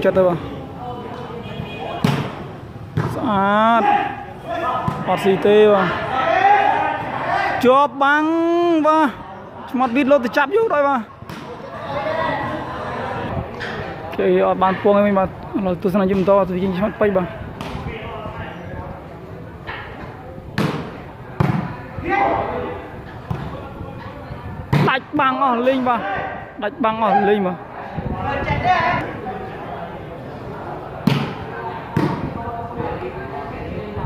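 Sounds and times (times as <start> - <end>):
faint chatter of onlookers: 8.7 - 34.0.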